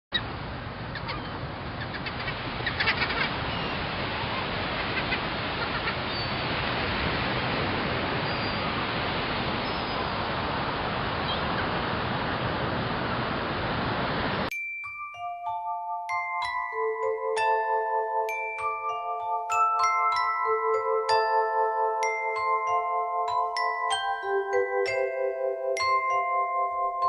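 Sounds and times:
steady rushing noise: 0.2 - 14.5
faint high bird-like chirps: 0.9 - 4.4, 5.0 - 6.4, 8.2 - 8.7, 9.6 - 10.2.

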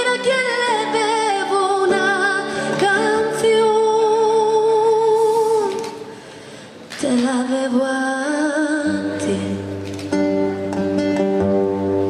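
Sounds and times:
woman singing: 0.0 - 6.1, 6.9 - 9.8
acoustic guitar: 0.0 - 12.0.

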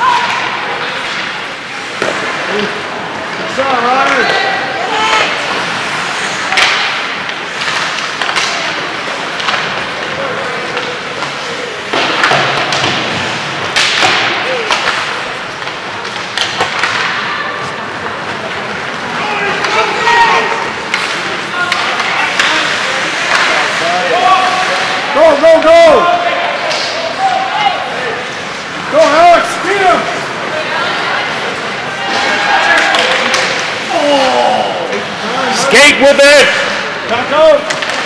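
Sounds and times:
skates scraping ice: 0.0 - 38.0
spectators talking and calling out: 0.0 - 38.0
sticks and puck clacking: 0.0 - 38.0.

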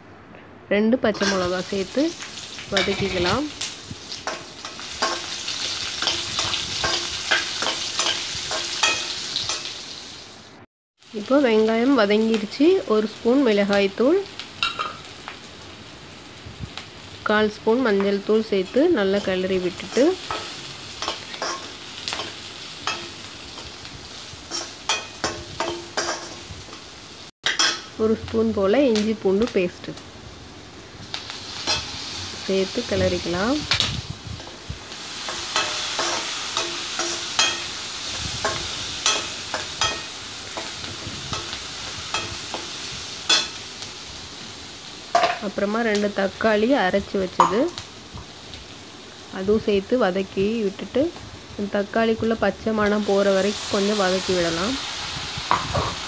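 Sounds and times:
onions sizzling in oil: 1.0 - 56.0
spoon scraping and knocking pan: 2.8 - 3.4, 4.2 - 9.7, 35.2 - 43.6.

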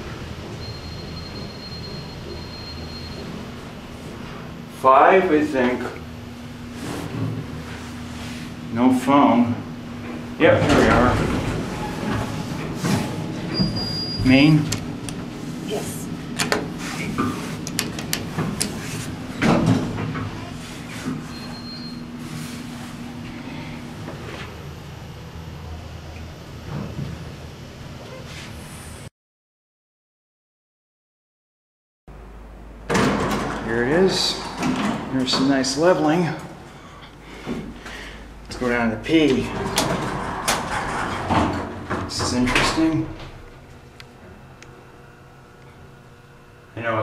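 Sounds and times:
elevator low hum: 0.0 - 29.1, 32.1 - 47.0.

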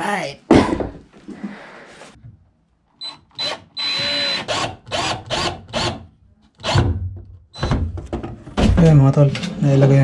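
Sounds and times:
cordless drill driving screws: 3.0 - 6.0, 6.6 - 6.9.

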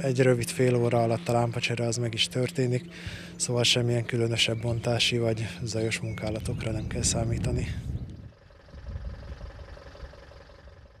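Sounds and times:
truck engine idling: 8.2 - 11.0.

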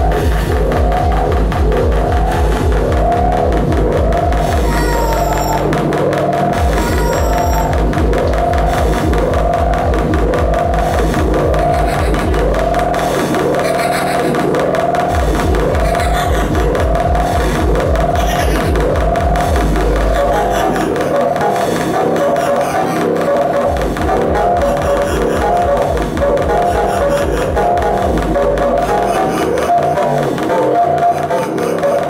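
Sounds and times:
dense pulsing bass: 0.0 - 31.2
swooping synth figure: 0.0 - 32.0.

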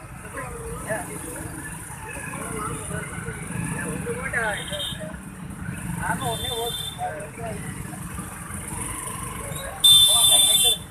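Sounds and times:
motorcycle and bus engines idling: 0.0 - 10.9
voices: 0.0 - 10.9.

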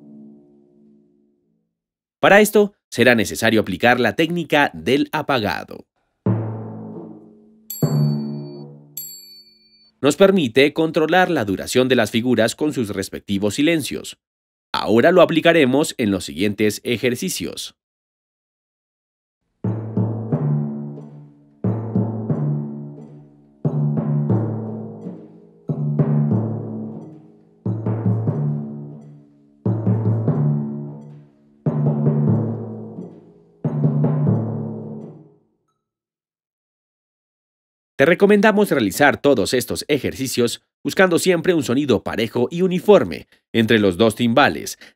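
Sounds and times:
timpani struck with felt mallets: 6.2 - 9.0, 19.6 - 35.4
timpani strokes damped short: 6.3 - 9.0
short high chime: 7.7 - 10.0.

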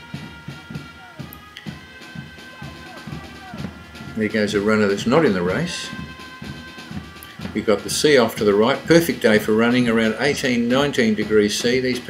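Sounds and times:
drumbeat: 0.0 - 12.0
held brass notes: 0.0 - 12.0.

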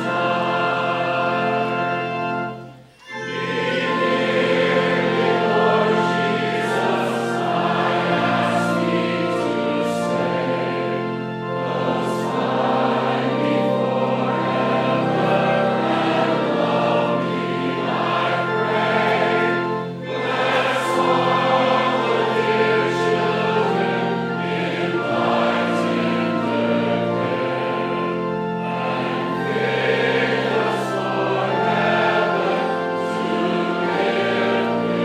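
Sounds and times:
congregation singing a hymn: 0.0 - 35.0.

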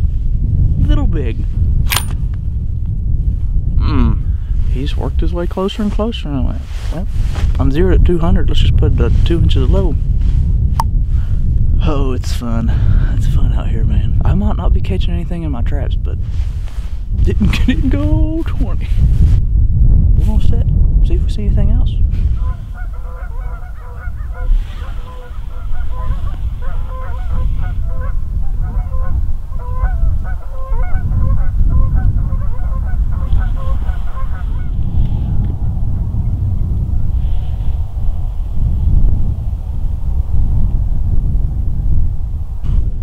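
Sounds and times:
wind rumble on microphone: 0.0 - 43.0
geese honking: 22.4 - 34.8.

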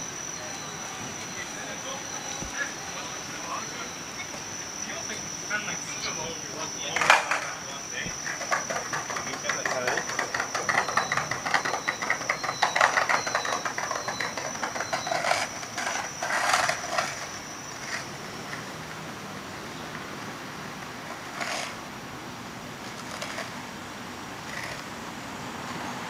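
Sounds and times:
people's voices: 0.0 - 18.1
insect trill with chirps: 0.0 - 26.0
street traffic hum: 0.0 - 26.0.

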